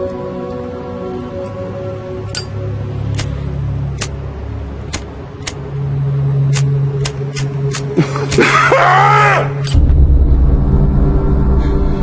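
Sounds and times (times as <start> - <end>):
low music drone: 0.0 - 12.0
deep rumble: 9.7 - 12.0.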